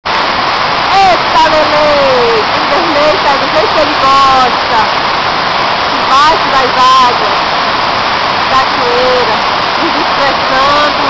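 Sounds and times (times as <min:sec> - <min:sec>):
waterfall pouring onto microphone: 0:00.1 - 0:11.0.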